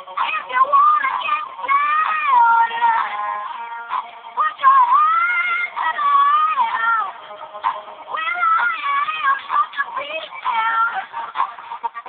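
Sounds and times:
processed electronic pop vocal: 0.0 - 12.0.

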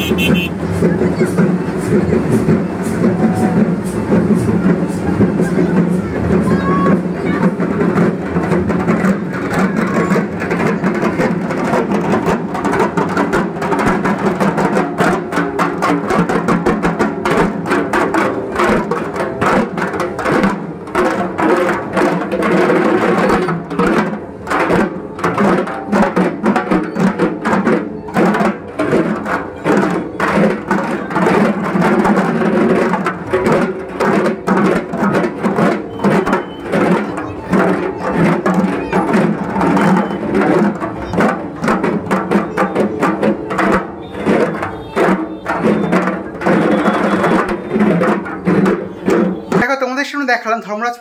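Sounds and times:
drums beaten with sticks: 0.0 - 50.3.

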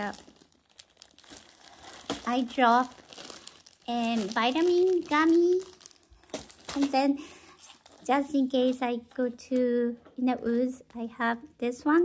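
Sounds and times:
plastic bag crinkling: 0.0 - 9.0.

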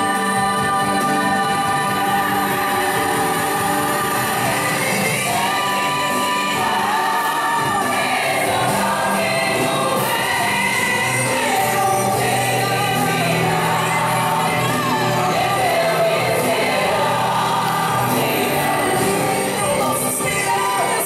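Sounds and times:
choir singing with music: 0.0 - 21.0.

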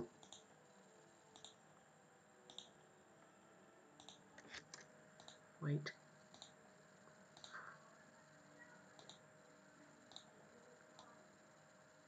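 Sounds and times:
faint computer mouse clicks: 0.2 - 0.5, 1.3 - 1.6, 2.5 - 2.7, 4.0 - 5.4, 6.3 - 6.6, 7.3 - 7.6, 9.0 - 9.2, 10.1 - 10.3.

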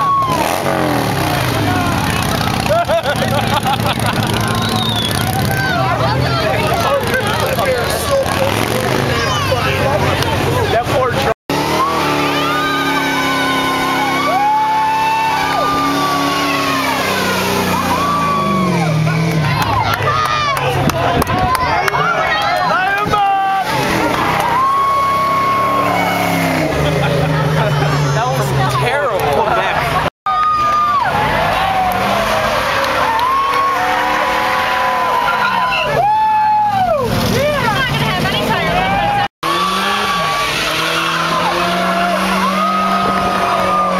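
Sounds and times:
car engine revving high: 0.0 - 20.0, 23.6 - 30.0, 37.1 - 43.9
tyres squealing: 4.3 - 9.8.

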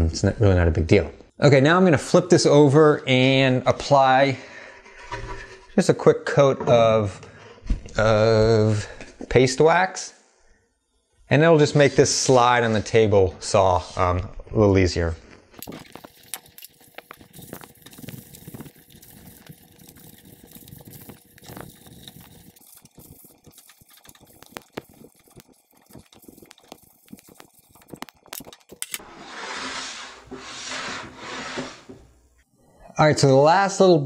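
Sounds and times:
cloth rubbing wax onto wood: 15.9 - 32.1.

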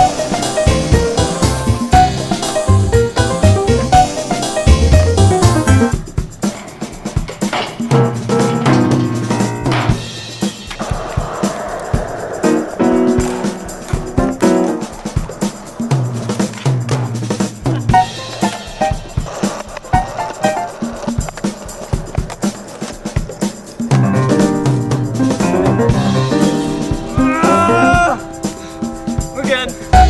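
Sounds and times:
skateboard clacking: 0.0 - 24.8
skateboard wheels rolling: 0.0 - 27.8
music with drum beat: 0.0 - 30.0.

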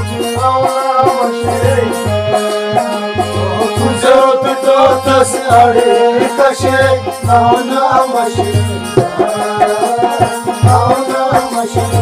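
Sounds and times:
hand percussion beat: 0.0 - 12.0
harmonium melody: 0.0 - 12.0.

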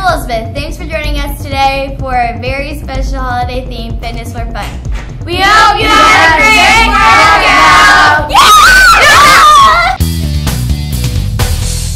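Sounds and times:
children screaming: 8.3 - 10.0.

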